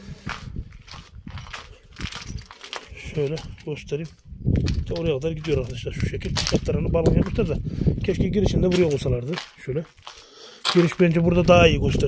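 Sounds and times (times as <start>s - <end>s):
footsteps on gritty concrete: 0.1s - 12.0s.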